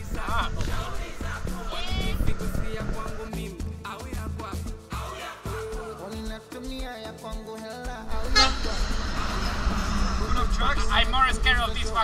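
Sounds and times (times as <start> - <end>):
brief rising sound: 8.1 - 11.7
truck passing by: 8.1 - 12.0.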